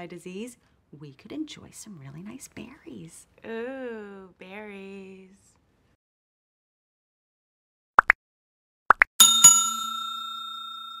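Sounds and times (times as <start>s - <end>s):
notification bell chime: 9.2s - 11.0s.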